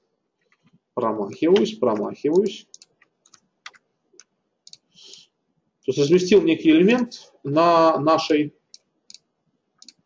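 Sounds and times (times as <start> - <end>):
mouse buttons clicking: 1.5 - 5.2, 8.7 - 10.0.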